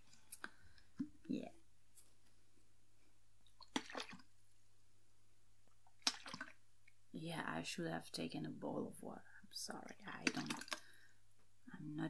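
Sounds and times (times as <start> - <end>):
wet squishes: 3.4 - 4.4, 5.8 - 7.0, 9.8 - 11.0.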